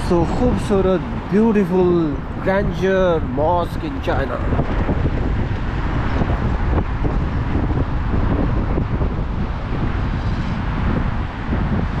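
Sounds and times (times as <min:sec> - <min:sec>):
street traffic noise: 0:00.0 - 0:12.0
wind rumbling on microphone: 0:00.0 - 0:12.0.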